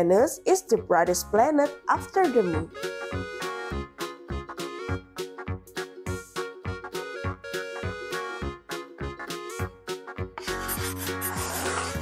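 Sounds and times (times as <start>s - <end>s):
cheerful background music: 0.0s - 12.0s
crayon scribbling on paper: 10.4s - 12.0s.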